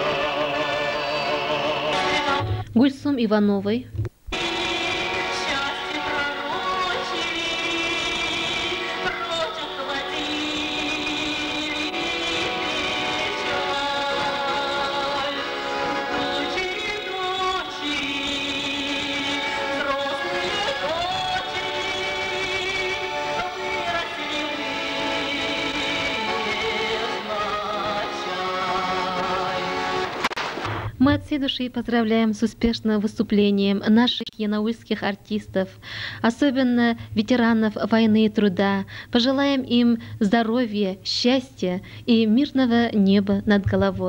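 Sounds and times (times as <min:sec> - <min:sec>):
woman singing: 0:01.9 - 0:03.8, 0:04.4 - 0:29.7, 0:36.3 - 0:44.0
instrumental accompaniment: 0:04.3 - 0:31.3.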